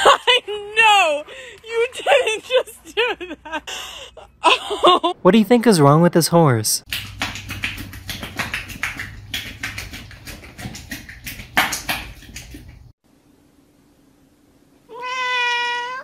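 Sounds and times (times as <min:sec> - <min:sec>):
horse tongue wet slaps and clicks: 0:06.9 - 0:12.9
cat meowing: 0:14.9 - 0:16.0.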